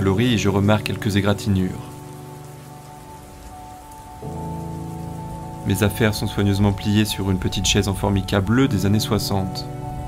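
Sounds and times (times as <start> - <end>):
heavy rain: 0.0 - 10.0
low background music tones: 0.0 - 10.0.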